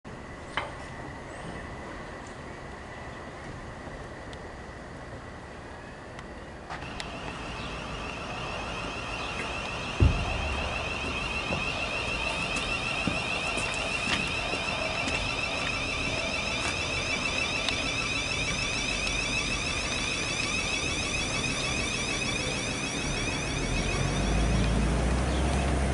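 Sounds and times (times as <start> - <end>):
electric train whine: 0.1 - 25.9
sharp clicks: 9.4 - 24.0
loud low thump: 9.8 - 14.2.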